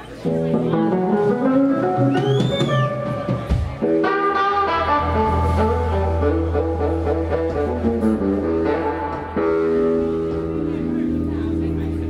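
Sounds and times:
electric guitar: 0.0 - 12.0
bass guitar: 0.1 - 12.0
drum kit: 0.5 - 11.2.

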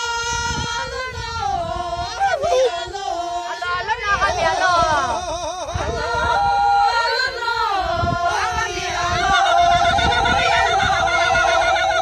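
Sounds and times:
voices chanting quavering note: 0.0 - 12.0
voices sliding in pitch: 8.4 - 12.0.

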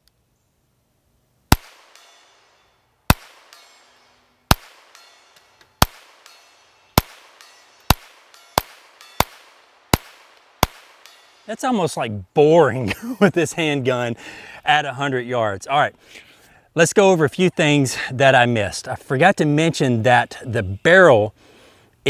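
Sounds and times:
pistol shots: 1.5 - 2.3, 3.1 - 3.7, 4.5 - 5.0, 5.8 - 6.4, 7.0 - 11.4.

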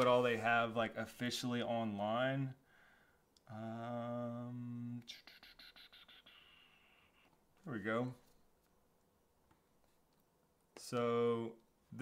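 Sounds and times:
breathy exhale: 2.6 - 3.2.

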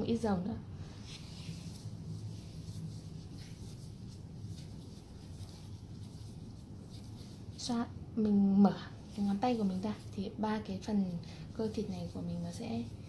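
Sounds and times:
steady low hum: 0.0 - 13.0
hands rubbing skin: 0.9 - 7.8, 8.9 - 13.0.

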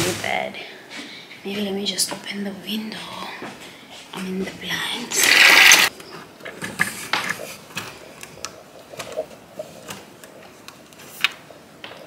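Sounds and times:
window blind clicking: 5.2 - 5.9.

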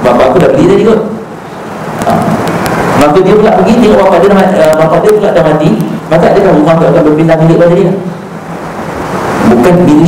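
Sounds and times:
man speaking through microphone: 0.0 - 1.3, 2.0 - 8.3, 9.4 - 10.0.

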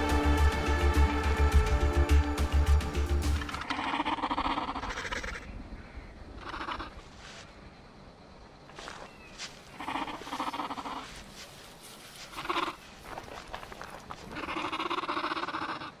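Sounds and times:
dinosaur calls: 3.5 - 5.5, 6.4 - 7.0, 14.3 - 16.0.

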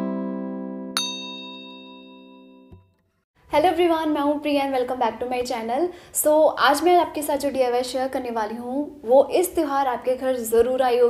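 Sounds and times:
acoustic guitar chord ringing: 0.0 - 3.0
notification bell ding: 1.0 - 2.8.

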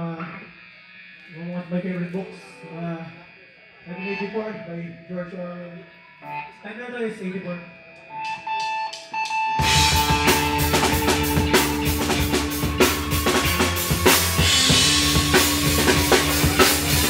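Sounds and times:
ringing guitar tone: 0.0 - 17.0
punk band playing: 8.2 - 17.0.

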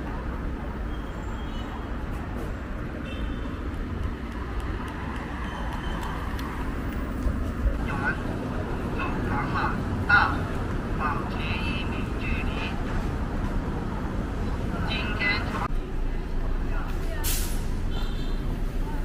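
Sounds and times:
road traffic rumble: 0.0 - 19.0
people talking: 7.7 - 8.3, 8.9 - 12.8, 14.8 - 15.7.

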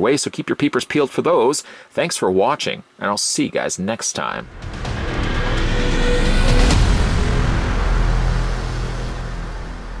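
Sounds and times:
music with heavy bass: 4.5 - 10.0.

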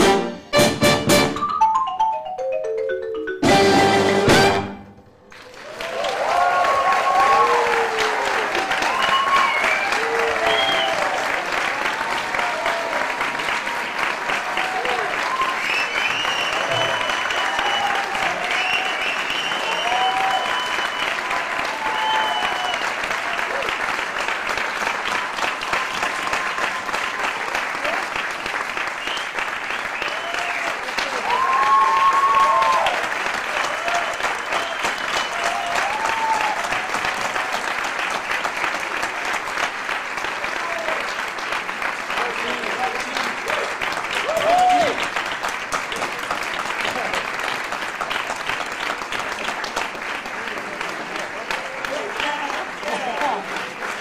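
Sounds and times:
audience cheering: 3.6 - 47.2
audience applauding: 3.6 - 54.0.

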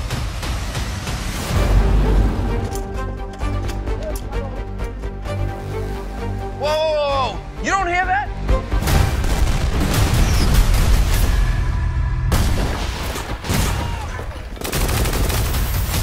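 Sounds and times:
trailer music: 0.0 - 13.4
explosions: 8.8 - 14.4.

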